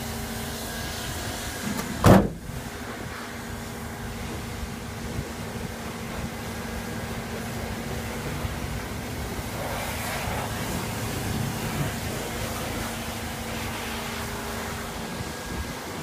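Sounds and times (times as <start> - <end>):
engine idling: 0.0 - 16.0.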